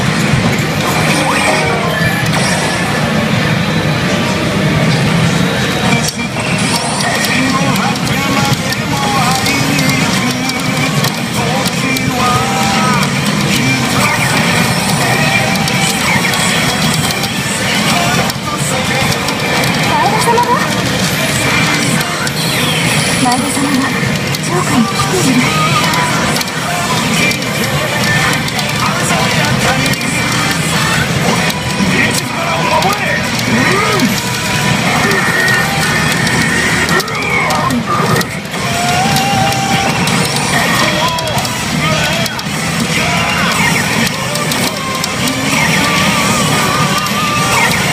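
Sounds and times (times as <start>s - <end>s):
mechanical clatter: 0.0s - 47.9s
pachinko machine music and effects: 0.0s - 47.9s.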